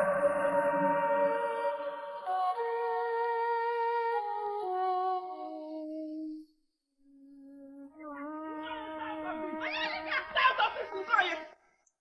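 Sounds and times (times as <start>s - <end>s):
hummed vocal film music: 0.0s - 11.5s.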